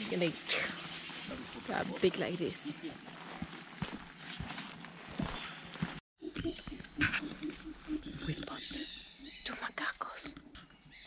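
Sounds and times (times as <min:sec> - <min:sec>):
howler monkeys grunting: 0:06.2 - 0:10.8
high insect drone: 0:06.2 - 0:11.0.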